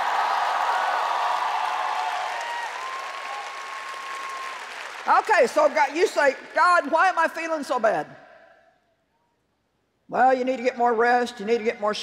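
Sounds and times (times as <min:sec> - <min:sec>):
large audience applauding: 0:00.0 - 0:06.9.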